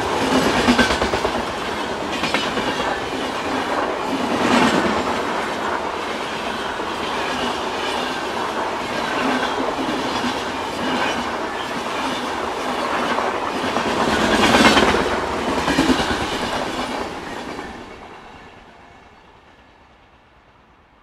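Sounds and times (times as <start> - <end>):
train wheels rushing on rail: 0.0 - 21.0.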